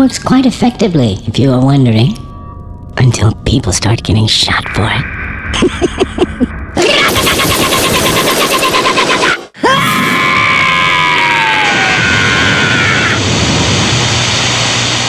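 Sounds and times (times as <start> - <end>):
falling electronic whine: 3.4 - 8.6
laughter: 5.5 - 6.5, 8.3 - 9.4
cartoon gunfire: 6.8 - 9.4.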